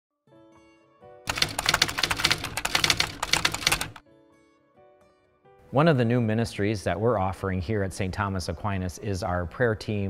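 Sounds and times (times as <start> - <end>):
typewriter key clacks: 1.3 - 4.0.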